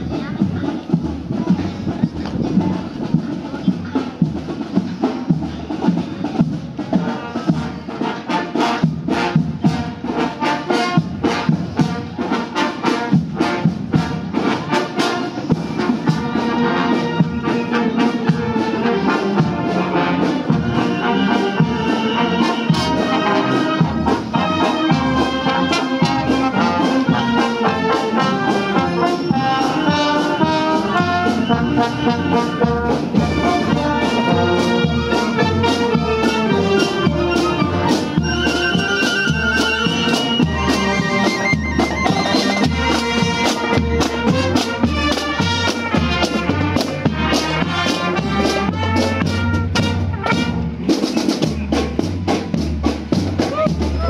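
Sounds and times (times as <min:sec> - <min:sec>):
brass marching band playing: 0:00.0 - 0:54.0.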